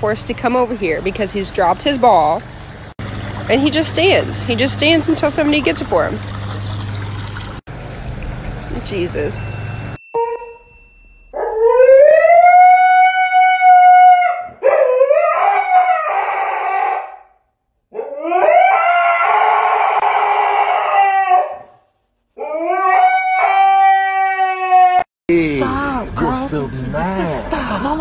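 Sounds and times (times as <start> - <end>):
husky howling: 11.4 - 17.2, 17.9 - 21.8, 22.4 - 25.1.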